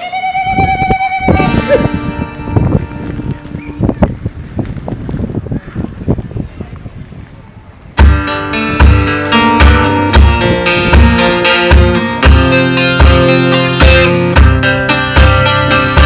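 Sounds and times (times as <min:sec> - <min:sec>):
acoustic guitar strumming: 0:01.2 - 0:03.6, 0:08.0 - 0:16.0.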